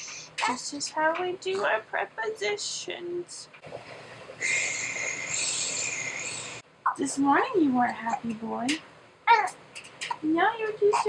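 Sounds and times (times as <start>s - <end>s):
high hiss: 4.4s - 6.6s.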